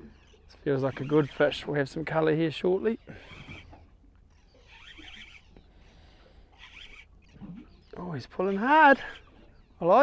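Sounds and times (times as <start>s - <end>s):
fishing reel whirring: 3.1s - 3.7s, 4.3s - 5.6s, 6.5s - 7.4s.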